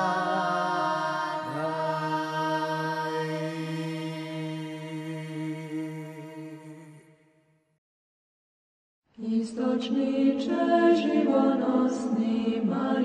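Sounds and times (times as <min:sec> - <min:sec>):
slow liturgical chant: 0:00.0 - 0:07.2, 0:09.2 - 0:13.0.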